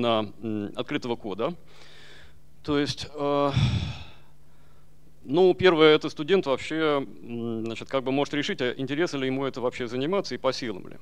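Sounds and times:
man hesitating and sighing: 3.4s - 4.3s.

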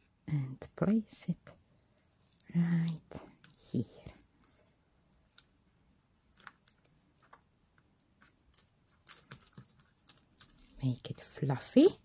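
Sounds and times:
paper and card rustling: 6.3s - 12.0s.

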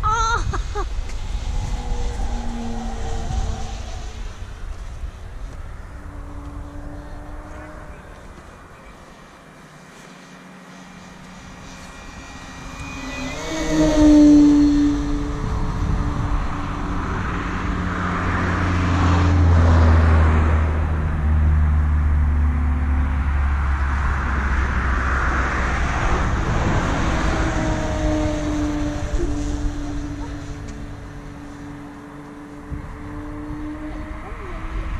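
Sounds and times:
low rumble: 0.0s - 9.4s, 10.3s - 34.2s
model plane motor whine: 9.1s - 17.8s, 27.3s - 31.6s.

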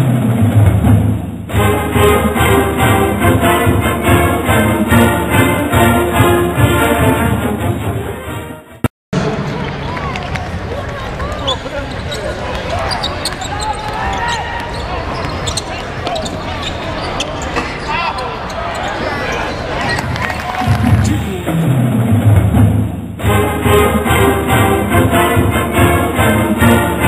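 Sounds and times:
crowd talking: 9.2s - 21.7s
sneakers squeaking: 11.1s - 21.3s.

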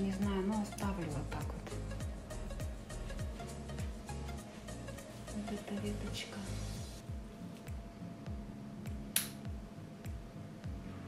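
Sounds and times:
quiet music with repeating beat: 0.0s - 11.0s.

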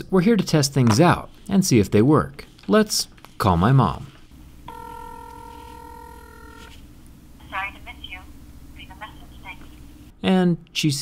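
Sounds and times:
phone ringback tone: 4.7s - 6.7s.

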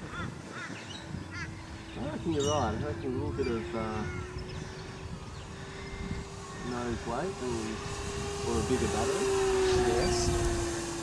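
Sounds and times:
distant bird calling: 0.0s - 11.0s
faint steady hum: 0.0s - 11.0s.

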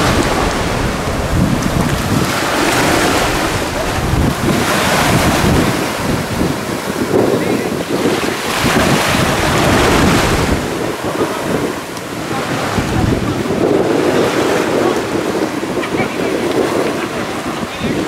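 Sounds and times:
waves washing on shore: 0.0s - 18.0s
wind buffeting microphone: 0.0s - 18.0s.

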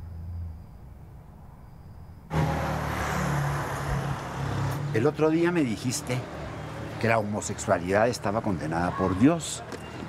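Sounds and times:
road noise rush: 2.2s - 10.0s
car engine running by: 2.3s - 5.2s.

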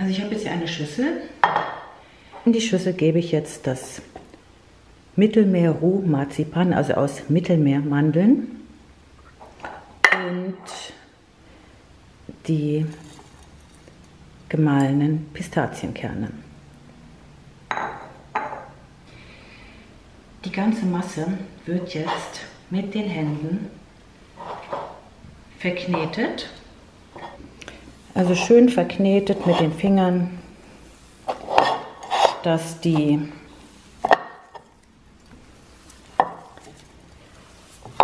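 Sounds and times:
hands kneading dough in bowl: 31.2s - 38.0s.

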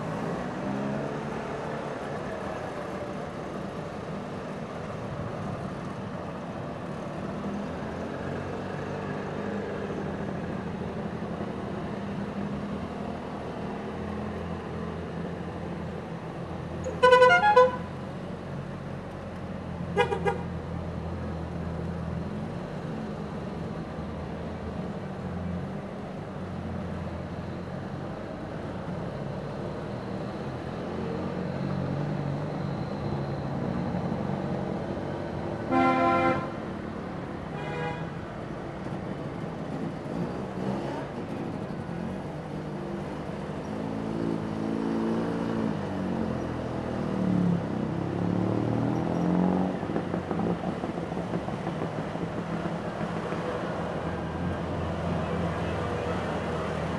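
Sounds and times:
car horn toots: 17.0s - 17.8s, 35.7s - 36.5s
two-stroke car engines driving by: 39.1s - 56.9s.

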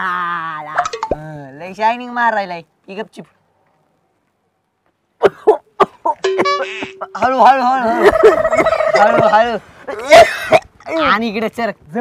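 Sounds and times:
boy laughing: 5.2s - 10.8s
boy coughing: 8.0s - 9.2s, 9.9s - 10.8s.

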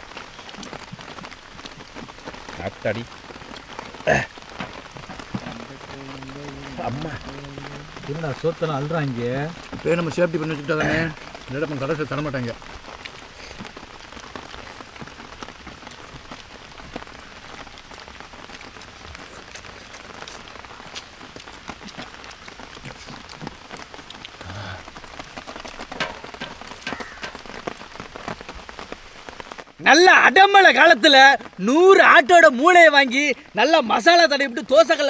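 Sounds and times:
steady rain: 0.0s - 35.0s.

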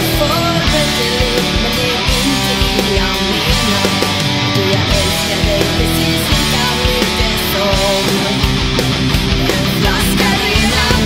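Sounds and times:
guitars: 0.0s - 11.0s
rock band music: 0.0s - 11.0s
steady drum beat: 0.0s - 11.0s.

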